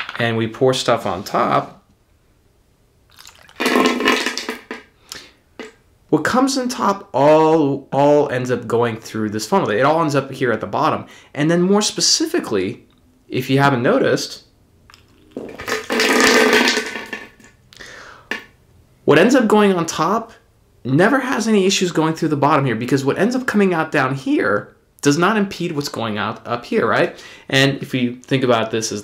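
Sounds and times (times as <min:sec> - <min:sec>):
water drips and splashes: 0:03.1 - 0:03.6
water pouring into funnel: 0:03.1 - 0:04.8, 0:15.3 - 0:17.5.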